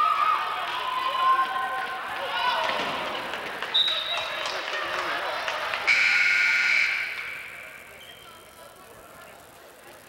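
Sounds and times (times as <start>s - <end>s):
scoreboard buzzer: 5.9s - 7.8s.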